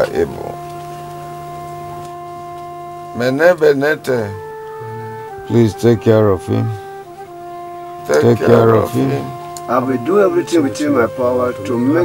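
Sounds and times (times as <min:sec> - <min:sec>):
sustained film music chord: 0:00.0 - 0:12.0.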